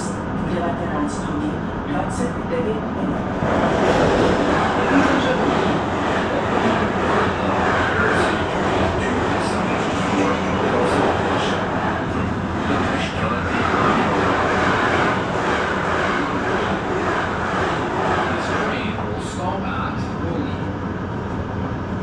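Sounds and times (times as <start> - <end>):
train wheels rumbling: 0.0 - 22.0.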